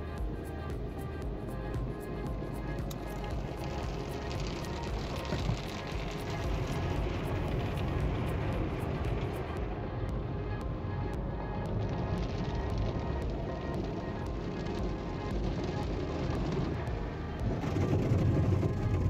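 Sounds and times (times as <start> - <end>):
music playing: 0.0 - 19.0
water spraying on windshield: 2.8 - 9.5, 11.8 - 19.0.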